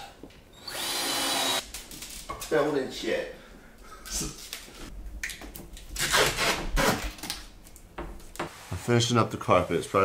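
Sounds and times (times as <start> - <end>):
tape tearing off roll: 6.0 - 7.5.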